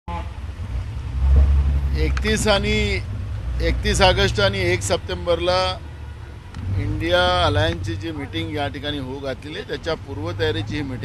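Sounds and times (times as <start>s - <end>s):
vehicle engine idling: 0.2s - 11.0s.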